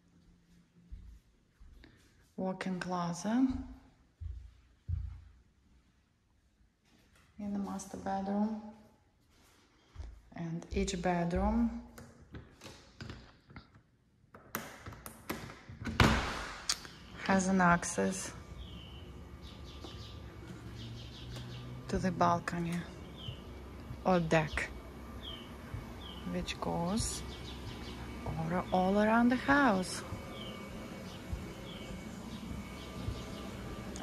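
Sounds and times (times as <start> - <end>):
footsteps on hard floor: 0.2 - 2.4, 3.4 - 5.5, 6.8 - 11.7, 25.3 - 26.2, 30.0 - 34.0.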